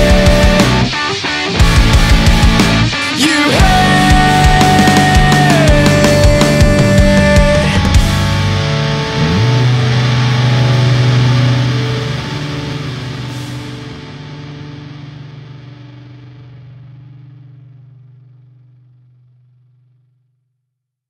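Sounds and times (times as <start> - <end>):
distorted electric guitar chord ringing: 0.0 - 20.0.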